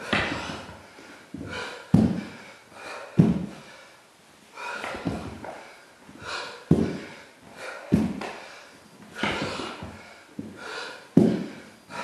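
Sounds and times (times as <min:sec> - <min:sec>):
man breathing hard: 0:00.0 - 0:12.0
hands and feet landing on wood: 0:01.4 - 0:02.4, 0:03.2 - 0:03.6, 0:04.8 - 0:05.6, 0:06.7 - 0:07.1, 0:07.9 - 0:08.4, 0:09.2 - 0:10.6, 0:11.2 - 0:11.6.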